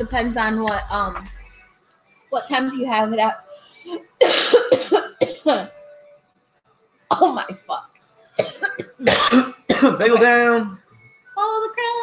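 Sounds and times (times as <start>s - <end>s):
woman coughing hard: 4.2s - 5.7s, 8.4s - 10.2s.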